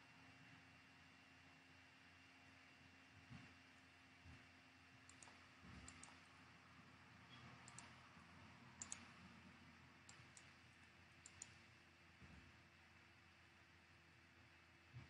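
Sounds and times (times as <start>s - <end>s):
low steady hiss: 0.0s - 15.0s
computer mouse clicks: 5.0s - 6.3s, 7.3s - 8.0s, 8.8s - 9.2s, 10.0s - 11.7s.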